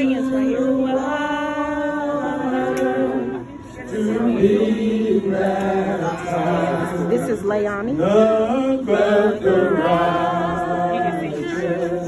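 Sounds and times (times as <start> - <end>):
voices singing a slow hymn: 0.0 - 12.0.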